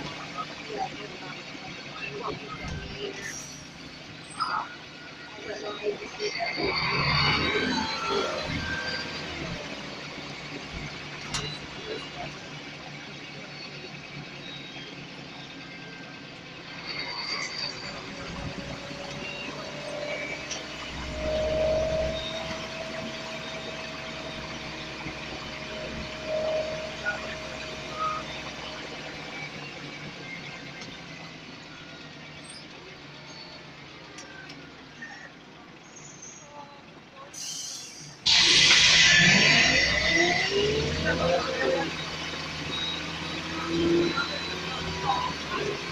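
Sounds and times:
bus diesel engine: 0.0 - 45.9
road noise: 0.0 - 45.9.

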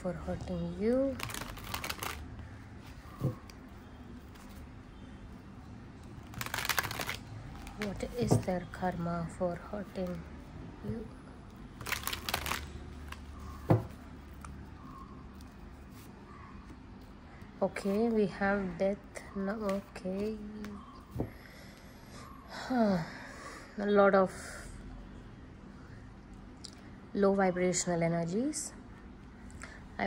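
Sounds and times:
low room hum: 0.0 - 30.0
cards being handled: 1.2 - 2.2, 4.2 - 4.7, 6.2 - 8.4, 11.8 - 14.4
cards shuffling: 1.2 - 2.2, 6.2 - 8.4, 11.8 - 14.4.

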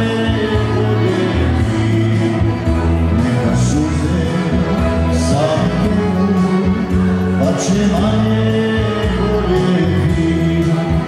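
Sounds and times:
bass line: 0.0 - 11.0
button accordion: 0.0 - 11.0
electronic keyboard: 0.0 - 11.0
man singing: 0.0 - 11.0.

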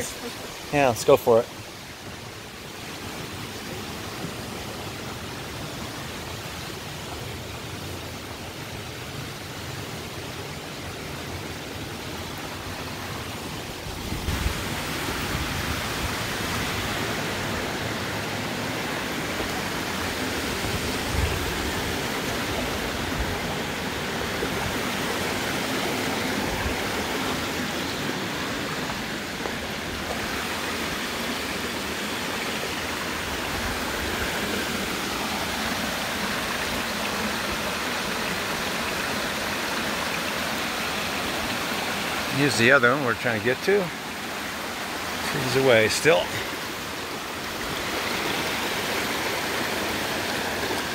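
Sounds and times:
creek water running over rocks: 0.0 - 50.9.

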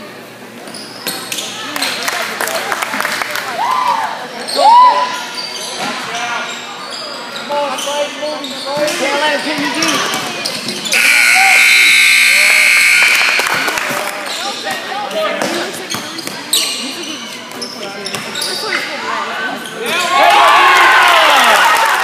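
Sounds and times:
scoreboard buzzer: 10.9 - 13.8.

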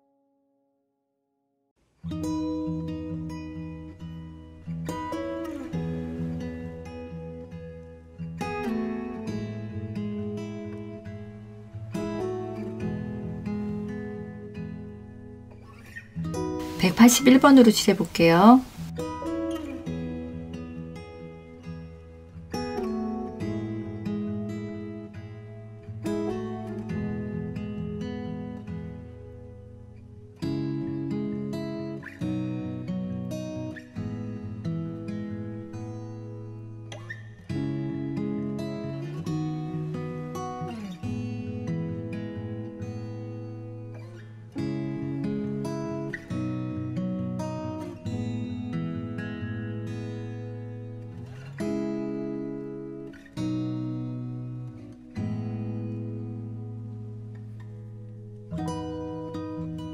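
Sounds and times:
acoustic guitar chords: 1.8 - 59.9.

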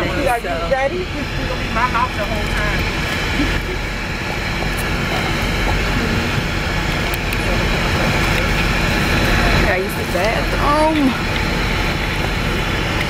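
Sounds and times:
bus running hum: 0.0 - 13.0
faint voices: 0.0 - 13.0.

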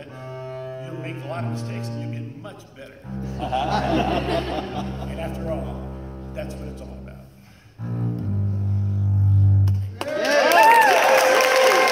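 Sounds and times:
bowed double bass: 0.0 - 10.0.

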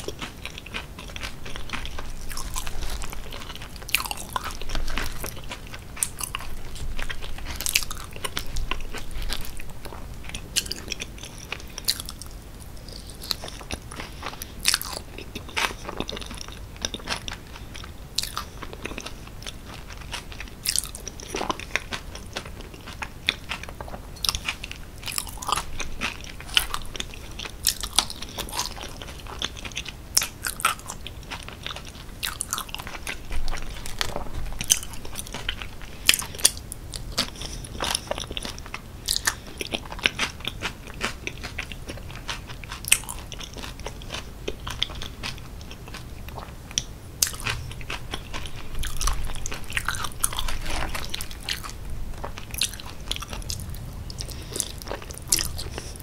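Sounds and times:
close chewing and wet mouth sounds: 0.0 - 56.0.

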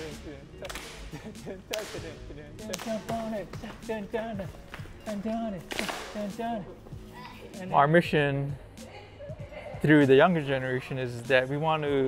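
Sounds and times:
background music: 0.0 - 12.0
bamboo poles cracking together: 5.6 - 6.3.

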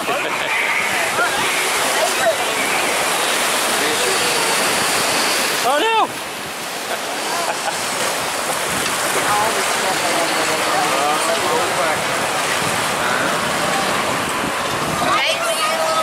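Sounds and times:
faint voices: 0.0 - 16.0
whitewater rushing: 0.0 - 16.0.

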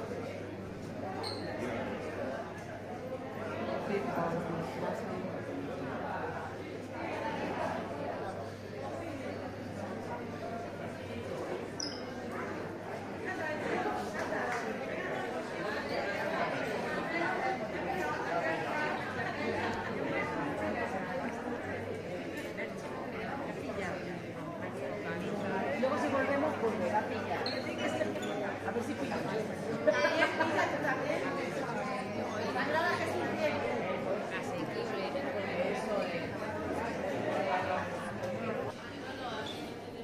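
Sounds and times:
crowd chatter in large hall: 0.0 - 40.0.

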